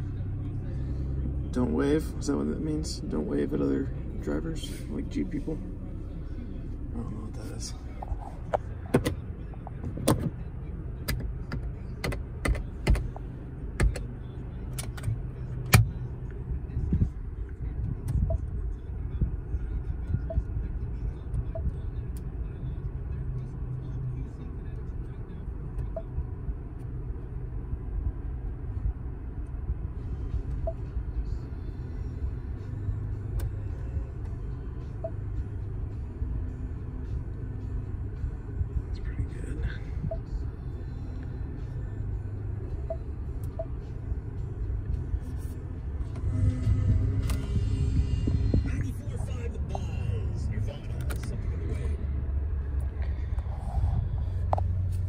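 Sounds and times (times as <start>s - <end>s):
car cabin rumble: 0.0s - 22.7s, 28.6s - 55.0s.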